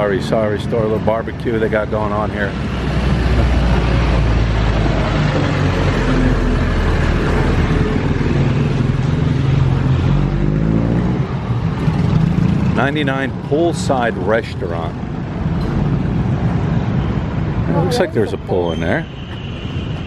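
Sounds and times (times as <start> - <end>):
motorcycle engines and traffic: 0.0 - 20.0.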